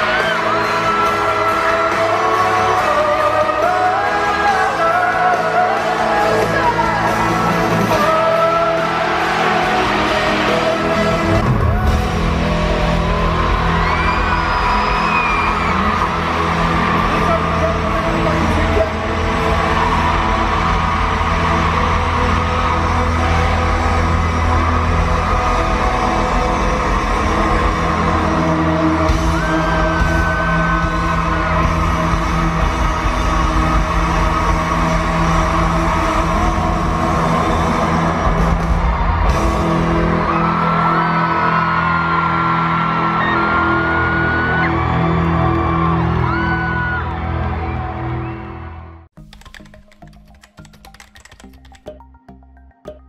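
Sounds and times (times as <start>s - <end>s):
live pop-rock band playing: 0.0s - 42.0s
crowd screaming and whooping: 0.0s - 49.1s.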